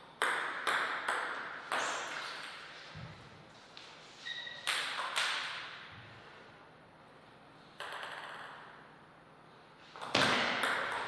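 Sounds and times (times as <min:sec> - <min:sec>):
table tennis ball bouncing: 0:00.1 - 0:02.7, 0:04.6 - 0:05.8, 0:07.8 - 0:08.8, 0:10.0 - 0:11.0.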